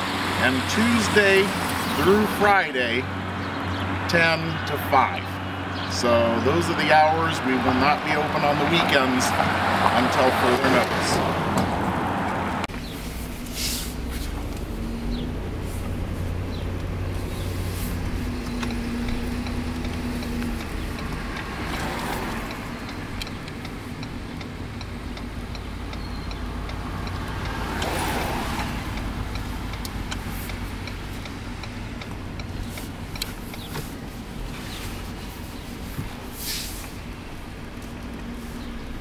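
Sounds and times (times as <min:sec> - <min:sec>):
car engine and road noise: 0:00.0 - 0:39.0
car passing: 0:00.0 - 0:39.0
faint regular ticking: 0:18.0 - 0:28.0, 0:28.6 - 0:34.2.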